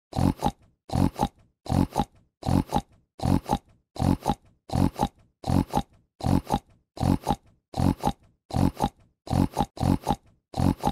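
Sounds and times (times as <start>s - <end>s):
pig grunting: 0.1s - 10.9s.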